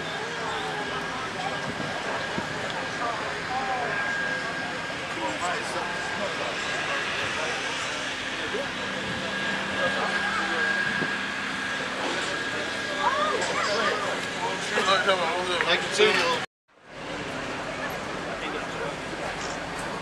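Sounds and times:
thin high whine: 0.0s - 16.4s.

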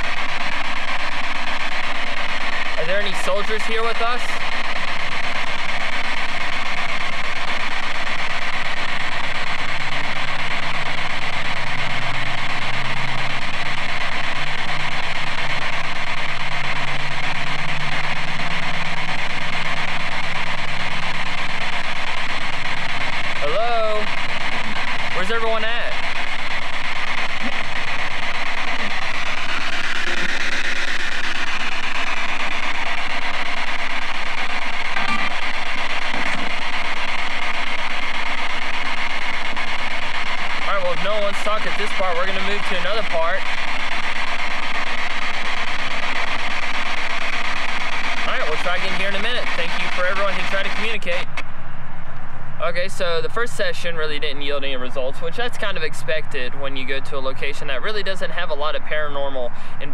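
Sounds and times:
radio static hiss: 0.0s - 59.9s
garbled radio voices: 2.7s - 4.5s, 21.6s - 31.2s, 40.6s - 43.6s, 48.2s - 51.4s.

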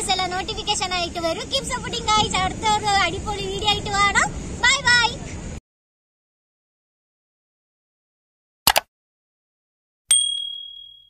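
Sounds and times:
bright bell ding: 10.1s - 11.0s.

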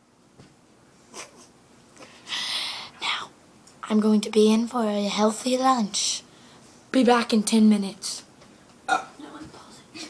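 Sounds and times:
person burping: 8.9s - 9.2s.

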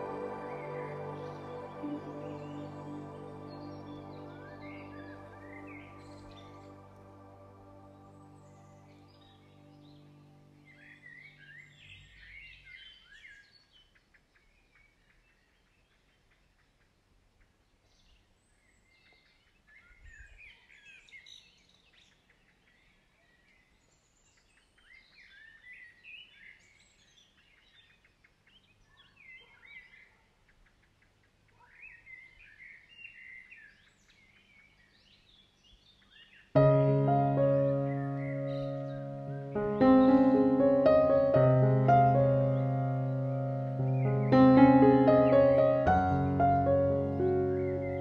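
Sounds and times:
piano music: 0.0s - 11.6s, 36.6s - 48.0s
soft music: 0.0s - 12.4s, 36.6s - 48.0s
small birds chirping: 0.0s - 48.0s.

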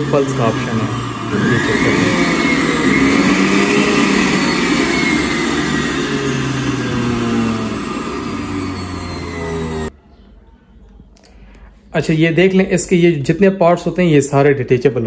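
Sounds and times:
juice extractor motor whine: 0.0s - 9.9s.

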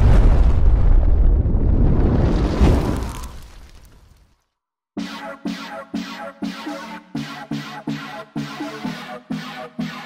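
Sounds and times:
explosion sound effect: 0.0s - 3.4s.

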